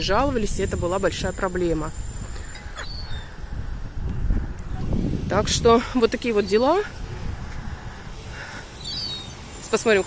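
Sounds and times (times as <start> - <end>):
faint high bird chirp: 0.6 - 3.4, 8.7 - 10.0.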